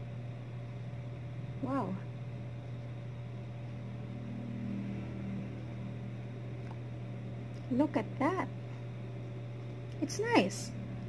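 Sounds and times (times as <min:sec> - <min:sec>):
low steady hum: 0:00.0 - 0:11.0
vehicle engine drone: 0:00.8 - 0:11.0.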